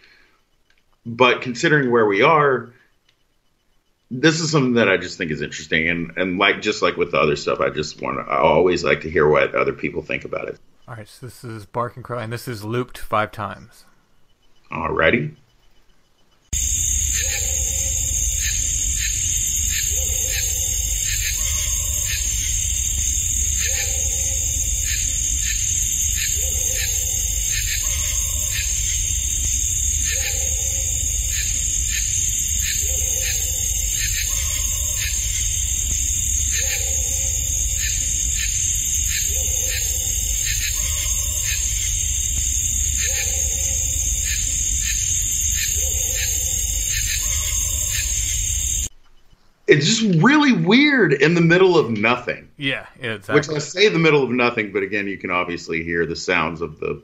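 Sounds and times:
night forest drone: 16.5 - 48.9
crow-like call: 16.6 - 42.2, 45.6 - 48.9.

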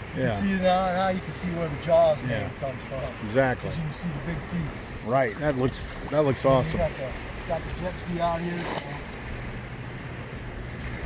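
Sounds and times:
waves lapping in shallow water: 0.0 - 11.0.

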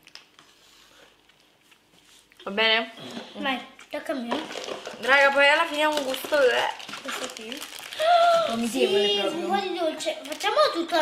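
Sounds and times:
faint clicks and rustles: 3.2 - 8.5.

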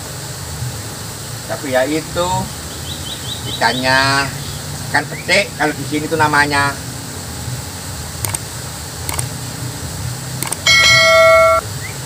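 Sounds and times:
road traffic rumble: 0.0 - 12.0
faint clicks: 9.1 - 9.3
notification bell chime: 10.7 - 11.6.

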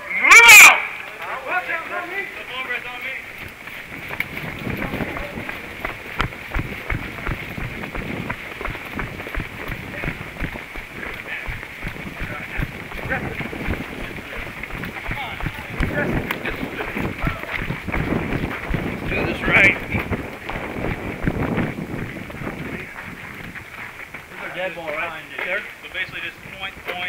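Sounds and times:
indistinct background voices: 1.1 - 21.0
running footsteps on dirt: 1.3 - 27.0.

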